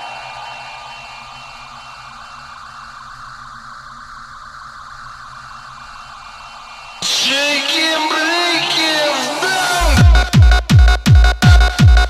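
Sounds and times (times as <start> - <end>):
steady hiss: 0.0 - 7.9
dance music: 7.0 - 12.0.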